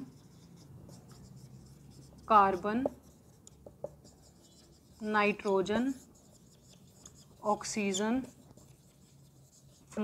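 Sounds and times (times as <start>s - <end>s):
marker pen scratching on whiteboard: 0.0s - 10.0s.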